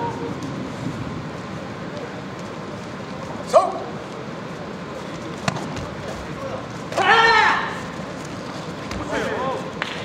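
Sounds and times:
hall hubbub: 0:00.0 - 0:10.0
person shouting: 0:07.0 - 0:07.8
loud sustained kihap shout: 0:07.0 - 0:07.9.

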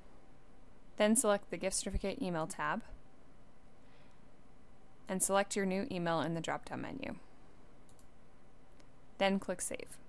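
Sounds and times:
low room hiss: 0:00.0 - 0:10.0
computer mouse clicks: 0:07.8 - 0:08.2.

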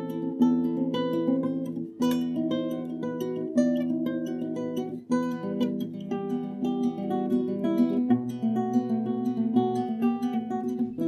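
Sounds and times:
acoustic guitar picked notes: 0:00.0 - 0:11.0.

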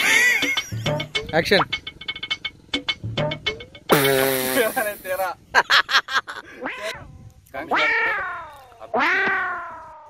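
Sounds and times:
meow-like wail: 0:07.7 - 0:10.0.

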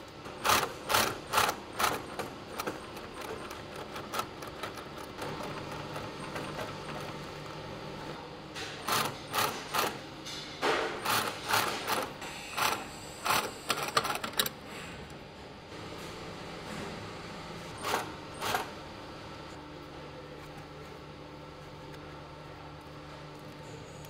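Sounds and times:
industrial sewing machine stitching: 0:00.4 - 0:08.2, 0:08.8 - 0:10.0, 0:10.9 - 0:14.5, 0:17.7 - 0:18.8.

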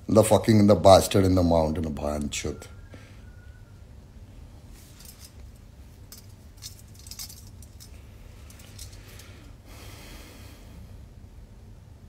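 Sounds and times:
soft rustle: 0:04.4 - 0:09.6
metallic clinking and jingling: 0:04.8 - 0:09.6.

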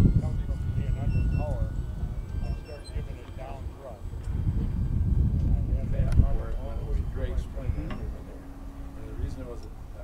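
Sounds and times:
faint steady hum: 0:00.0 - 0:10.0
people talking indistinctly: 0:00.0 - 0:10.0
wind rumble on microphone: 0:00.0 - 0:10.0.

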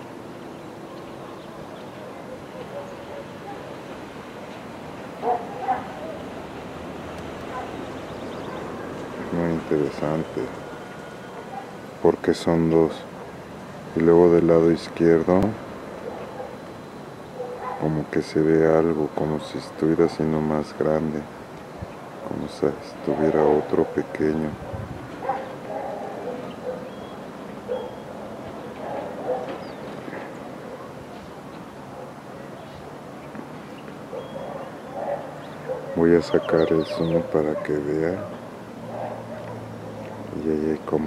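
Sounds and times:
steady background hiss: 0:00.0 - 0:41.0
animal calls: 0:05.2 - 0:06.4, 0:07.4 - 0:09.4, 0:10.0 - 0:11.8, 0:16.0 - 0:18.0, 0:23.0 - 0:31.3, 0:33.6 - 0:40.5.

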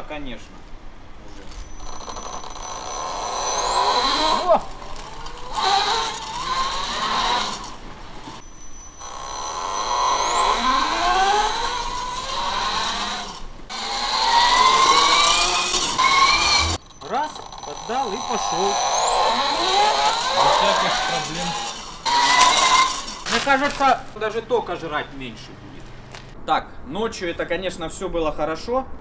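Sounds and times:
tyre and road noise: 0:00.4 - 0:26.4
electric bike motor whining: 0:01.4 - 0:24.8.

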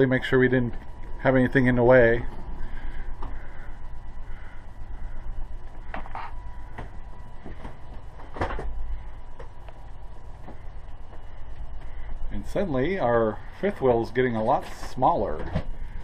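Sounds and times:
slide mechanism droning: 0:00.0 - 0:16.0.

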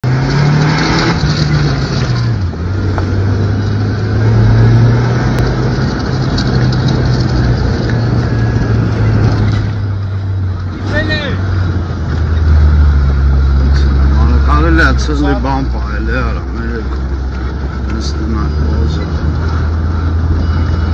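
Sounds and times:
vehicle engine driving: 0:00.0 - 0:20.9.

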